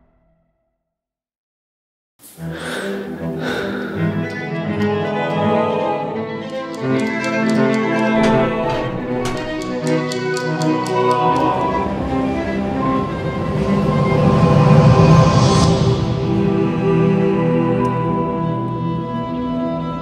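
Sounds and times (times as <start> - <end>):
bowed strings holding chords: 2.6 - 20.0.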